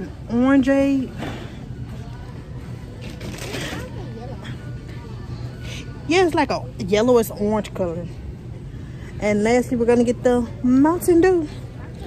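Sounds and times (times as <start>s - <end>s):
faint music: 0.0s - 12.0s
steady low hum: 0.0s - 12.0s.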